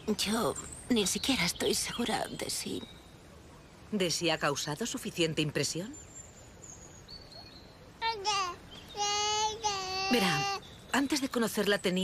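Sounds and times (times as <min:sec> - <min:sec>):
child singing: 0:08.0 - 0:10.6.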